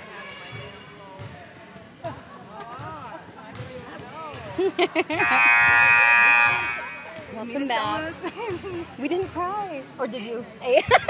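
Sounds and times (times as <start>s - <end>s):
scoreboard buzzer tone: 5.2s - 7.2s.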